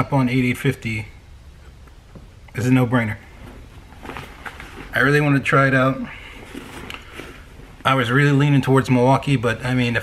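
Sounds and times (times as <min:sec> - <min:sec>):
man speaking: 0:00.0 - 0:01.2, 0:02.5 - 0:03.4, 0:04.8 - 0:06.6, 0:07.8 - 0:10.0
tool bag rustling and clicking: 0:06.4 - 0:07.9.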